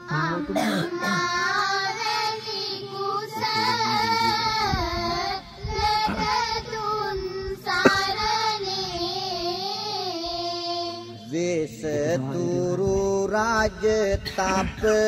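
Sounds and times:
high voice singing slow melody: 0.0 - 15.0.

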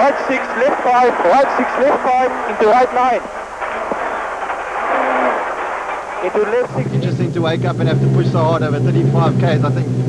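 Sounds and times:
tyres rushing on gravel: 0.0 - 9.6
car engine: 0.4 - 10.0.

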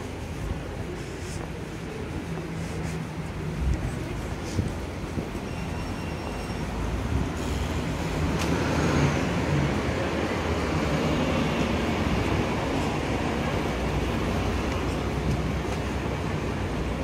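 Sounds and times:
street traffic noise: 0.0 - 17.0
bus driving past: 4.2 - 17.0.

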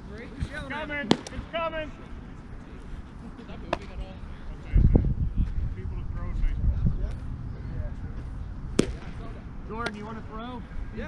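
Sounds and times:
faint distant voices: 0.0 - 11.0
sharp crack: 1.0 - 1.7, 8.7 - 10.0
wind on microphone: 3.8 - 11.0.

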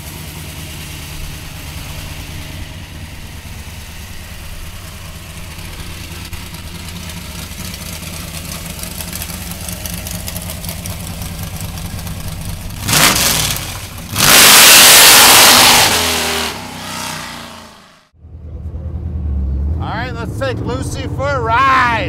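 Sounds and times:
car engine idling and revving: 0.0 - 22.0
tires spinning: 0.0 - 22.0.

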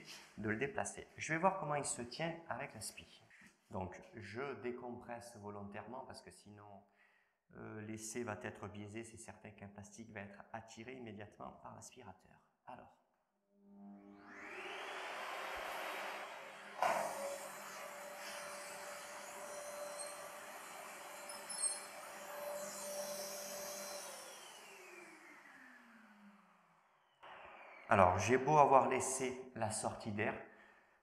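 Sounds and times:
motor winding down whine: 13.7 - 28.9
vacuum cleaner running: 13.8 - 29.2.

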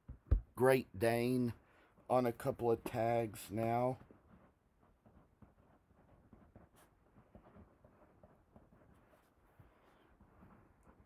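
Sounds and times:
pen scratching on paper: 4.3 - 11.0.

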